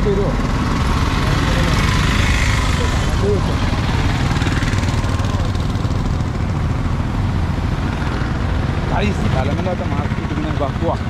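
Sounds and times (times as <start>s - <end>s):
low rumble of traffic: 0.0s - 11.0s
small engine passing: 0.0s - 11.0s.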